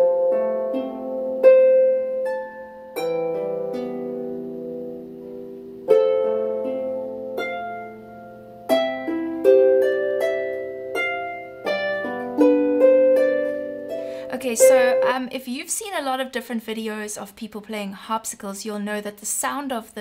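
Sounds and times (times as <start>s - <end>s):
harp chords and notes: 0.0s - 15.4s.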